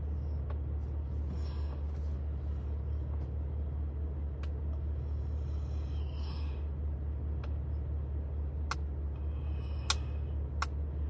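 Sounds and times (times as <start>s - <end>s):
vehicle cabin rumble: 0.0s - 11.0s.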